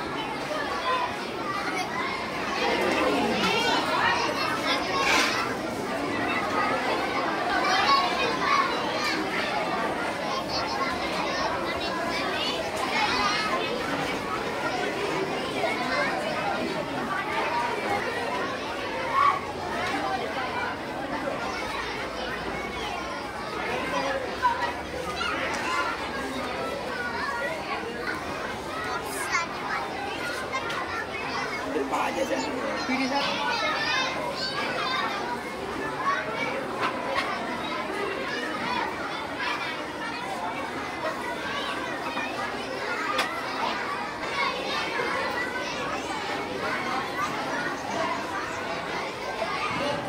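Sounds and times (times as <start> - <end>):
young children chattering: 0.0 - 50.0.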